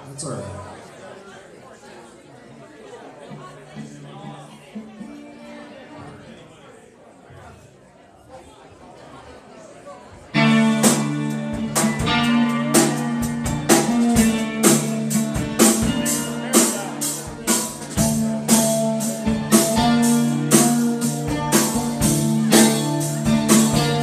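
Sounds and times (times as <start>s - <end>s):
rock band playing: 10.3s - 24.0s.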